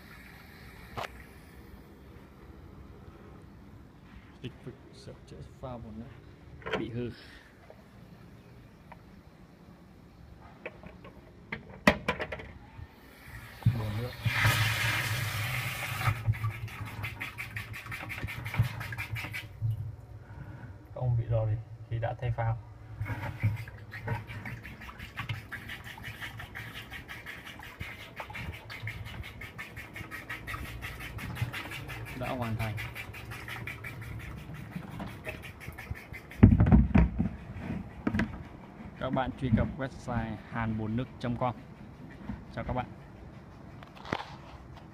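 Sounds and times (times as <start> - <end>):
water splashing into a tank: 0.0 - 1.6, 13.1 - 20.0, 23.0 - 37.1.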